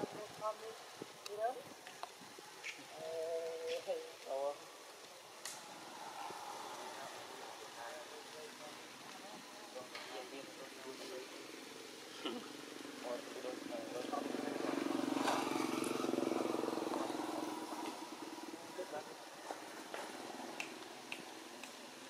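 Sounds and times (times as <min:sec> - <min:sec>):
outdoor background noise: 0:00.0 - 0:22.0
faint human voices: 0:05.8 - 0:15.7.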